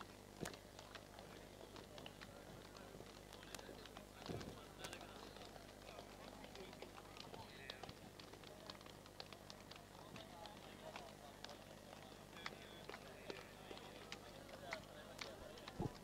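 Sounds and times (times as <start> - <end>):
low steady hum: 0.0 - 16.0
small clicks and taps: 0.0 - 16.0
faint chatter of men: 0.4 - 16.0.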